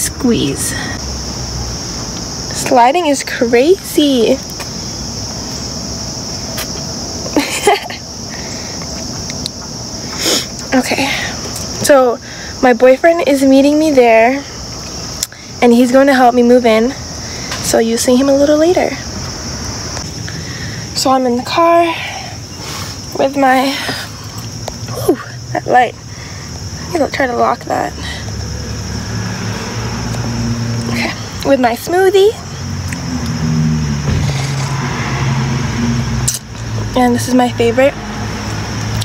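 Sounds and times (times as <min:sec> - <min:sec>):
insects droning: 0:00.0 - 0:39.0.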